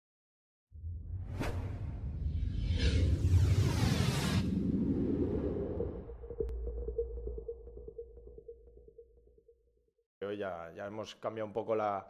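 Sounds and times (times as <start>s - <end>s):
deep low rumble: 0.8s - 9.6s
sharp whoosh: 1.0s - 6.1s.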